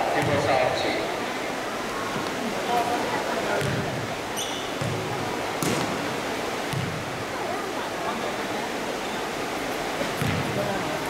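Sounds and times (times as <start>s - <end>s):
basketball bouncing on gym floor: 3.6s - 3.8s, 4.8s - 5.9s, 6.7s - 7.0s, 10.2s - 10.5s
high squeak: 4.4s - 4.7s.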